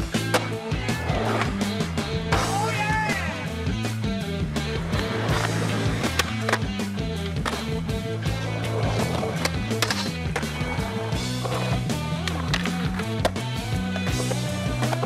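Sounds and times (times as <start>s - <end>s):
music with steady bass line: 0.0s - 15.0s
skateboard wheels rolling on concrete: 0.0s - 15.0s
skateboard clacking: 0.1s - 2.4s, 4.6s - 15.0s.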